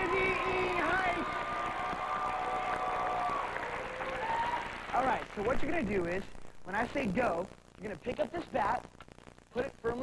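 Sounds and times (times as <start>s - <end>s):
long held shouts: 0.0s - 4.9s
audience cheering and applauding: 0.0s - 5.6s.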